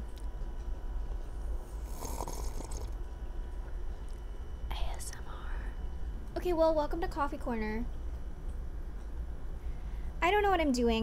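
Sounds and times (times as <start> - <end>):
close sips from a mug: 1.8 - 3.0.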